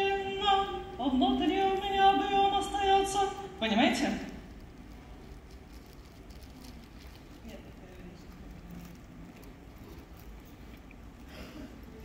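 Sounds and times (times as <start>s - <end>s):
low steady hum: 0.0s - 12.0s
rustling noises: 4.0s - 12.0s.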